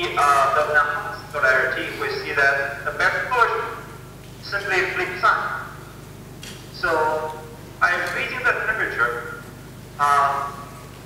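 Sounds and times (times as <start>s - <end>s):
man lecturing: 0.0s - 5.8s, 6.8s - 10.8s.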